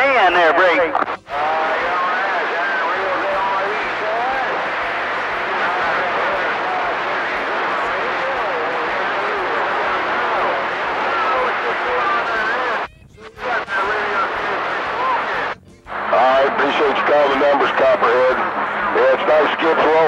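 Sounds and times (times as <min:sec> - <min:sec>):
garbled radio voices: 0:00.0 - 0:20.0
radio static hiss: 0:00.0 - 0:20.0.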